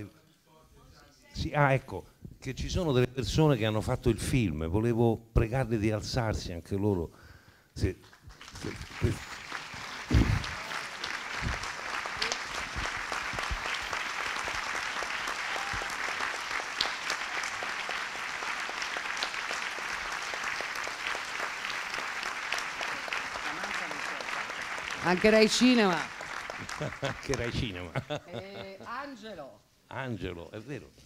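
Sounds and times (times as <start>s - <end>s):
audience applauding: 8.0s - 28.2s.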